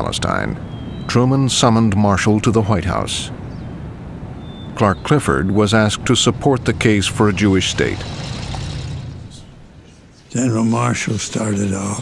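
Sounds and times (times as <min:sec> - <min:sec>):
car engine rumble: 0:05.6 - 0:10.3.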